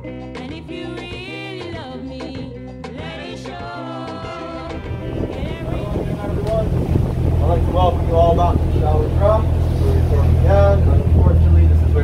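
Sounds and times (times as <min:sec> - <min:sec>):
boat engine rumbling: 0:04.6 - 0:12.0
wind buffeting microphone: 0:04.8 - 0:12.0.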